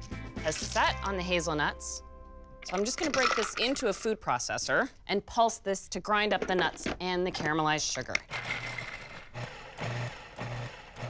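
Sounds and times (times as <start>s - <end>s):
food processor pulsing: 8.3s - 11.0s.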